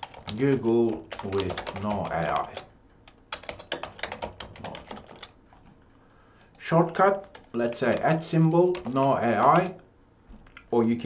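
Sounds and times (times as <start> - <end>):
typing on computer keyboard: 0.0 - 5.4, 6.4 - 9.8.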